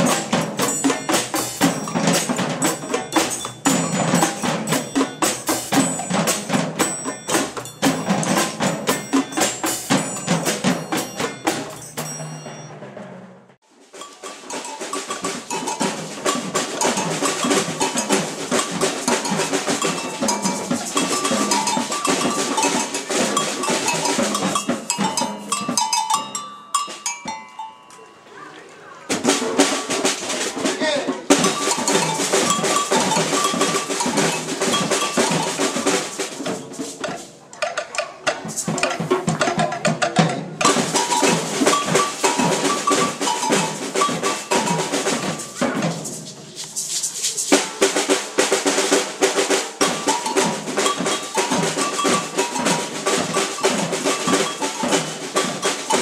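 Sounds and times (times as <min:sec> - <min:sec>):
snare drums and toms playing: 0:00.0 - 0:27.7, 0:29.1 - 0:56.0.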